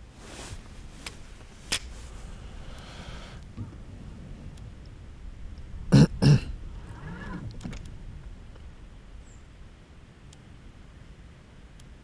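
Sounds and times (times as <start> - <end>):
man clearing his throat: 5.9 - 6.6.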